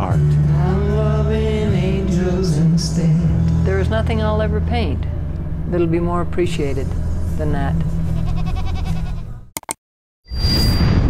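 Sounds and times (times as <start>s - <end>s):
goat bleating: 8.0s - 9.4s
whooshing booming sound effect: 10.3s - 11.0s.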